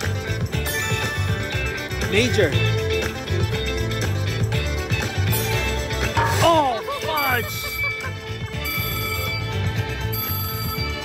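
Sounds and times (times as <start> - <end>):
electronic chime tones: 7.1 - 11.0.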